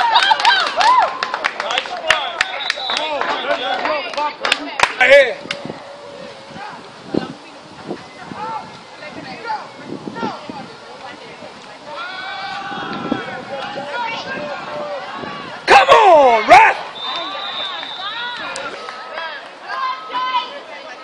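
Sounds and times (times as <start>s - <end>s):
spectators shouting and cheering: 0.0s - 10.8s, 11.8s - 21.0s
referee whistle: 2.4s - 3.2s, 16.9s - 18.3s
loud close yell: 12.0s - 18.6s.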